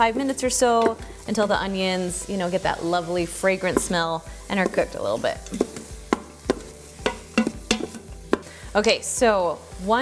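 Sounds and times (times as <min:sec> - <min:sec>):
wooden spoon knocking and scraping pot: 0:00.0 - 0:01.5, 0:03.6 - 0:08.6
faint sizzle: 0:00.0 - 0:10.0.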